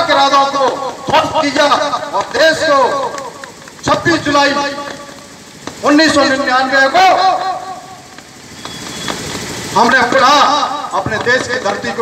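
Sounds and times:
man speaking into a microphone: 0.0 - 5.1, 5.8 - 7.8, 9.8 - 12.0
steady background noise: 0.0 - 12.0.

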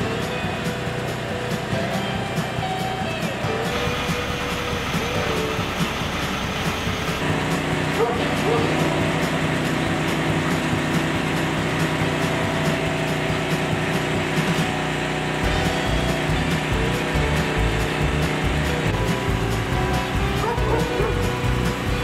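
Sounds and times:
low pulsing: 0.0 - 22.0
machinery hum: 0.0 - 22.0
rough saw-like noise: 3.2 - 22.0.

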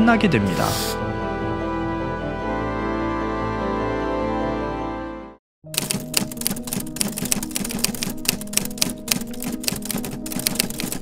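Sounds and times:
background music: 0.0 - 11.0
typewriter-like clicking: 5.8 - 11.0.

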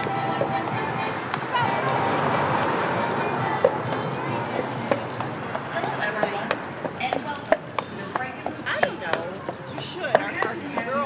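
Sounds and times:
horse hooves on asphalt: 0.0 - 11.0.

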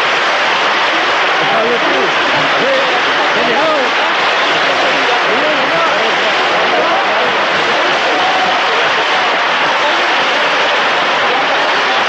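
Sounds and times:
audience applauding: 0.0 - 12.0
voices calling out: 0.2 - 12.0.

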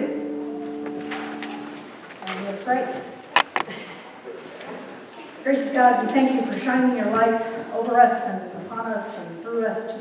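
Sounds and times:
band chord ringing out: 0.1 - 2.0.

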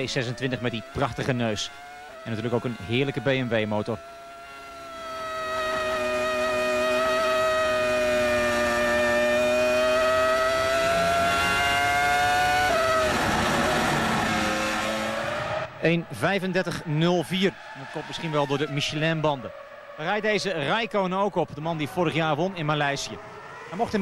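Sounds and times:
racing car engine at high revs: 0.0 - 24.0.

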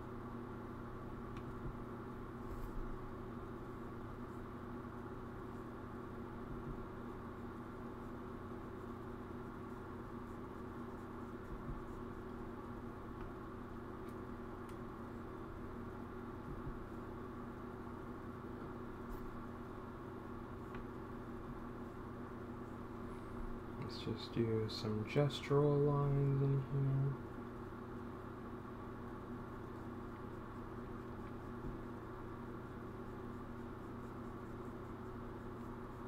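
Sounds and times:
low electrical hum: 0.0 - 36.0.

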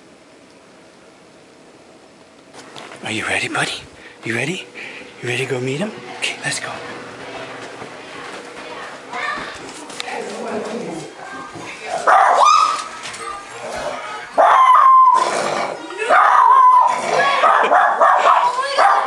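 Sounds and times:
puppy barking: 12.0 - 12.8, 14.4 - 15.2, 16.0 - 19.0.

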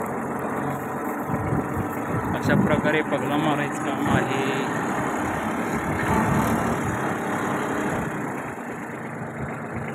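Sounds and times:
tractor diesel engine running: 0.0 - 9.9.

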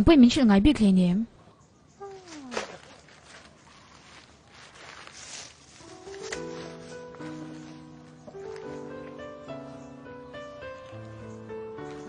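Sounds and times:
faint background noise: 0.0 - 12.0.

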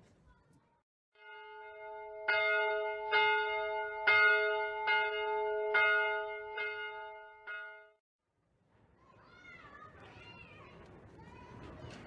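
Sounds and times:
church bell tolling: 1.2 - 8.0.

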